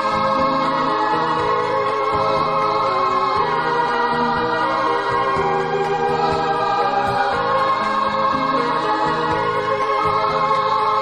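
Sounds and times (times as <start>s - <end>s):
chorus singing held notes: 0.0s - 11.0s.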